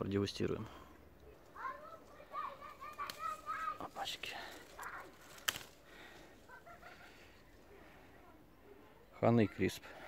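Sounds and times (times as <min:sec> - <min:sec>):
leaves and branches rustling: 0:01.0 - 0:10.0.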